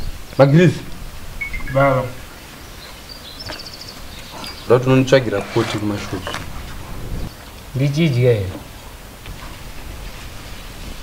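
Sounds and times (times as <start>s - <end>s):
outdoor background noise: 0.0s - 11.0s
rapid high chirping trill: 1.4s - 2.5s
faint high chirp: 1.4s - 4.7s.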